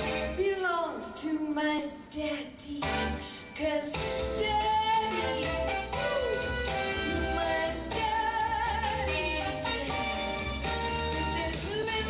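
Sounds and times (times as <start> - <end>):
instrumental accompaniment with bass: 0.0 - 0.8, 2.8 - 12.0
woman singing with vibrato: 0.0 - 10.5, 11.1 - 12.0.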